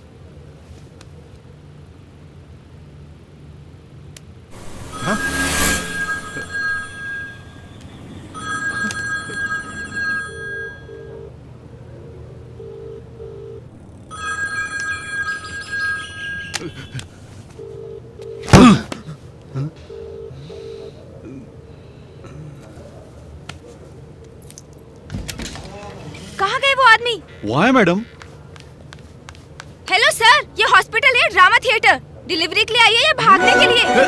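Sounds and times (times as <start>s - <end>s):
vehicle passing whoosh: 4.5s - 8.4s
low pulsing ringback tone: 4.5s - 11.2s
phone ringtone beeping: 4.6s - 11.3s, 14.1s - 17.0s.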